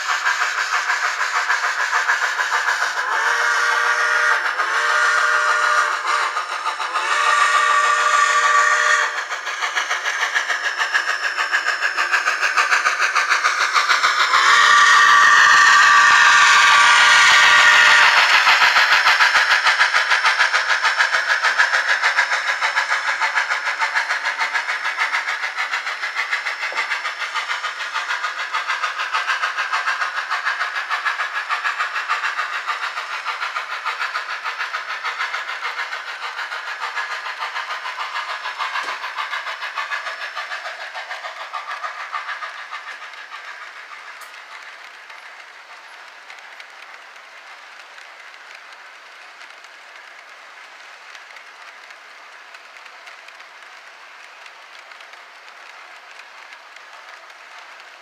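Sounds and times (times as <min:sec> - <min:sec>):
steam exhaust chuffs: 0:00.0 - 0:58.0.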